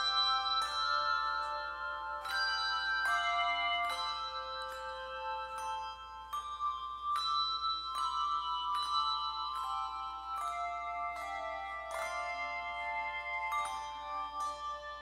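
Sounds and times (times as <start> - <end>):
handbell choir playing a hymn: 0.0 - 15.0.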